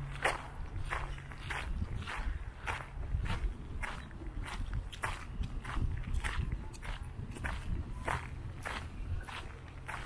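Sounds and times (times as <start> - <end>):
footsteps on dirt trail: 0.0 - 10.0
steady low rumble: 0.0 - 10.0.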